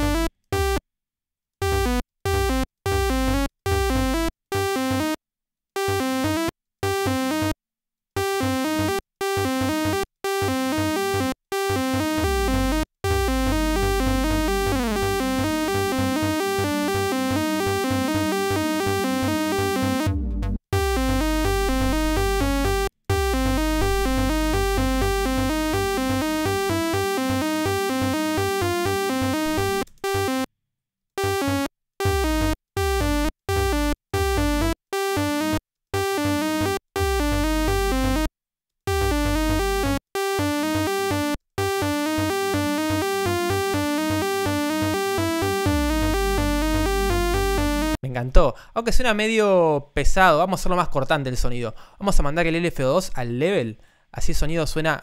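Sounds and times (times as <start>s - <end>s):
synth sawtooth arpeggio: 12.0s - 30.5s, 31.2s - 38.3s, 38.9s - 48.0s
deep bass note: 12.2s - 15.7s, 20.0s - 26.4s, 32.1s - 34.7s, 37.0s - 38.3s, 38.9s - 40.0s, 45.7s - 48.0s.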